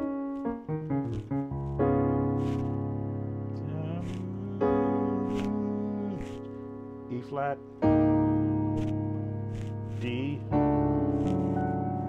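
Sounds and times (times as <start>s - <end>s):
sustained piano chords: 0.0s - 12.0s
man's voice: 3.6s - 7.8s, 10.0s - 11.8s.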